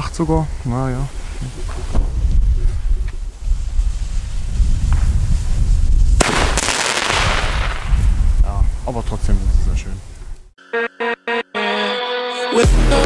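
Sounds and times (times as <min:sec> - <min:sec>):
firework stars bursting: 0:01.0 - 0:08.2
firework bang: 0:04.6 - 0:08.4.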